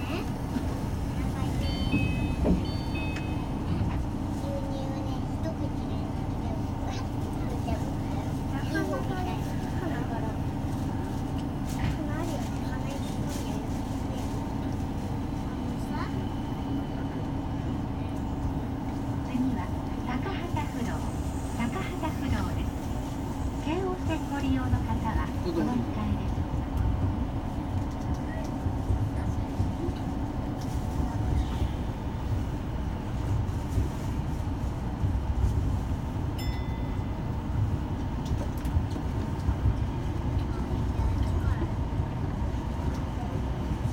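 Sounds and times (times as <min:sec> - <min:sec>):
train rumble and hum: 0:00.0 - 0:43.9.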